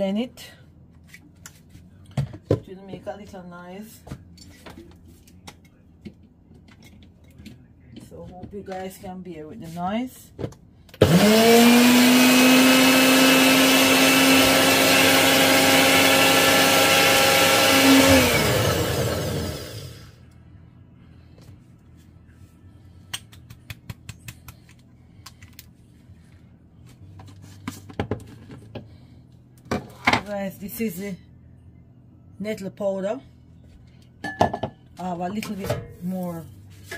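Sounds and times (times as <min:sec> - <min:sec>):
blender motor whining: 0:11.0 - 0:20.1.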